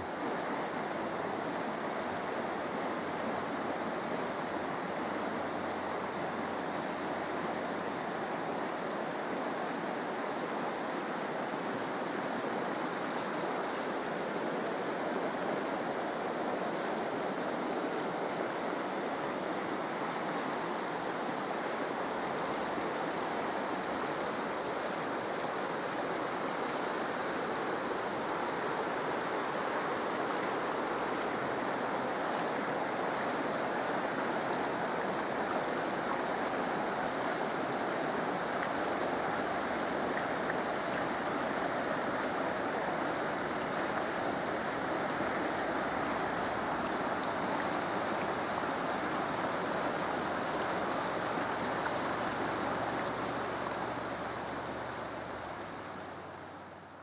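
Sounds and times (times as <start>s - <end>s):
river rushing over boulders: 0.0s - 57.0s.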